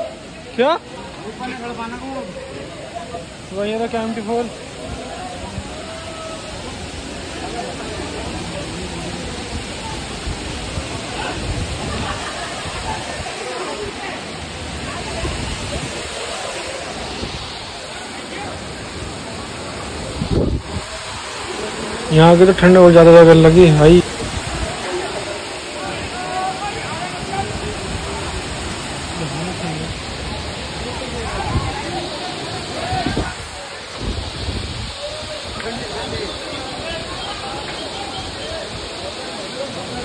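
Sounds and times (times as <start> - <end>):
crowd chatter: 0.0 - 40.0
waterfall rushing: 0.0 - 40.0.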